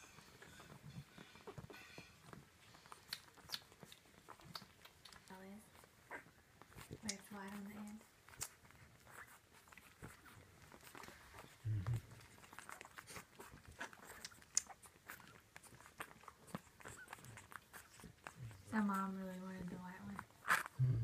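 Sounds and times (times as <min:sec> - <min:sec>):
puppies suckling wet clicks: 0:00.1 - 0:20.8.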